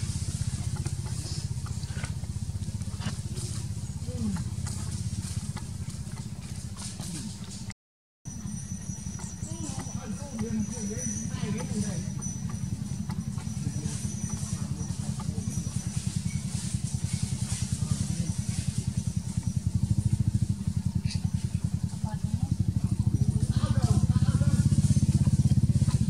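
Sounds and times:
engine running: 0:00.0 - 0:26.0.

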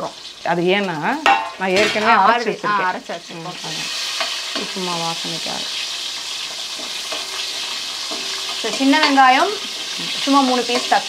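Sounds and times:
food sizzling in oil: 0:00.0 - 0:11.0
metal spatula scraping: 0:03.3 - 0:11.0.

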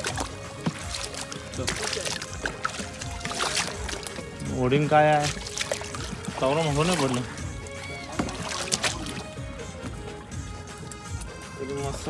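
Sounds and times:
background music with singing: 0:00.0 - 0:12.0
water lapping against boat hull: 0:00.0 - 0:12.0.

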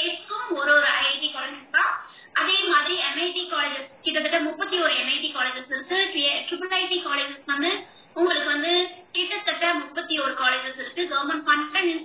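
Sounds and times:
woman talking over video call: 0:00.0 - 0:12.0.

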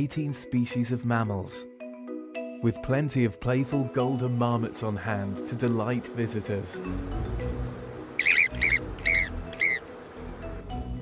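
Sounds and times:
background music: 0:00.0 - 0:11.0
marmot high-pitched calls: 0:08.2 - 0:09.9.

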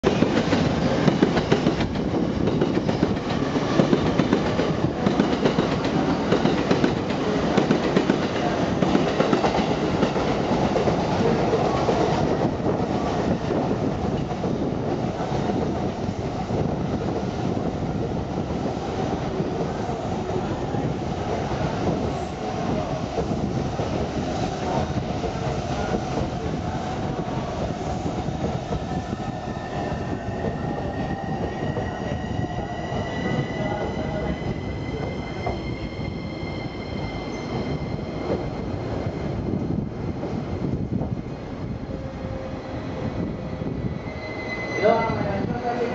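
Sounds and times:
train rumble and wheel clatter: 0:00.0 - 0:45.9
high whining squealing tone: 0:29.0 - 0:39.8, 0:41.8 - 0:45.8.

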